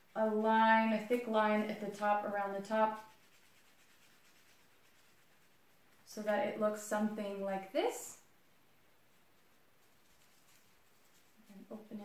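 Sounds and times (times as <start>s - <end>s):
marker rubbing on filter paper: 1.0s - 6.0s, 9.4s - 12.0s.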